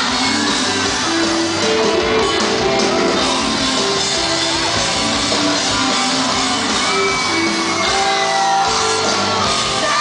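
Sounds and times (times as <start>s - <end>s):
crowd shouting: 0.0s - 10.0s
live pop-punk band playing: 0.0s - 10.0s.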